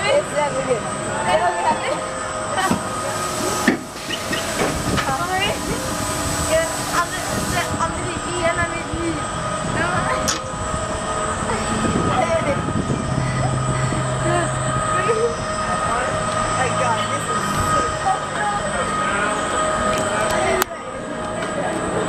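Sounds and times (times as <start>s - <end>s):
low drone: 0.0s - 22.0s
roller coaster train whine and hum: 0.0s - 22.0s
voices chattering: 0.0s - 22.0s.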